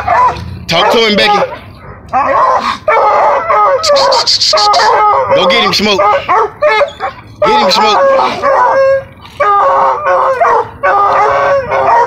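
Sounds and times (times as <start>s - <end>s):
hounds baying: 0.0s - 12.0s.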